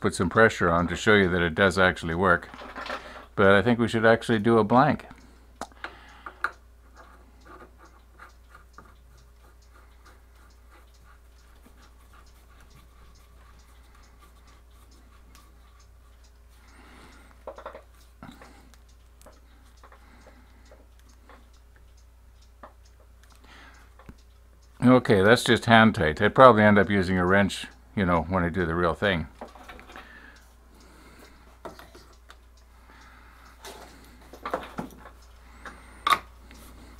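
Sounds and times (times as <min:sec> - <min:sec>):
low steady hum: 0:00.0 - 0:36.9.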